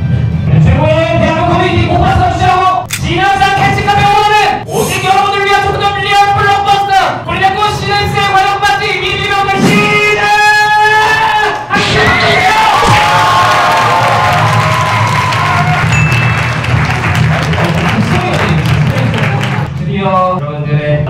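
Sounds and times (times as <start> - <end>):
crowd cheering and screaming: 11.9 - 17.2.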